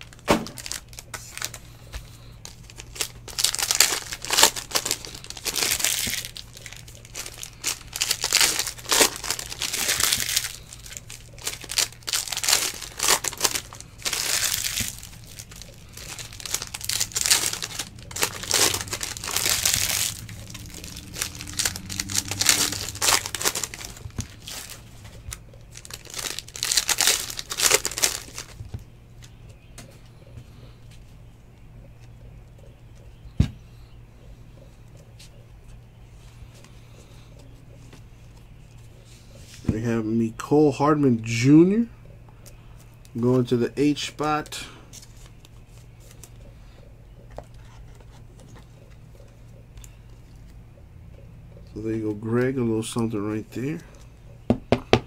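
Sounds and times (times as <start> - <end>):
foil wrappers crinkling and tearing: 0.0 - 29.4, 42.4 - 46.4
cards being handled: 0.2 - 30.0.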